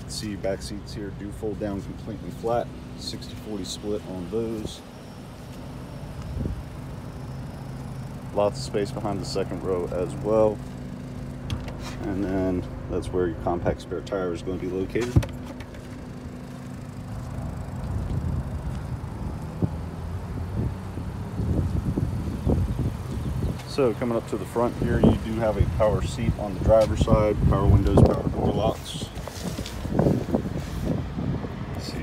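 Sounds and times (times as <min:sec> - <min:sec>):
outdoor background noise: 0:00.0 - 0:32.0
steady low hum: 0:00.0 - 0:32.0
wind rumble on microphone: 0:06.2 - 0:06.7, 0:17.2 - 0:32.0.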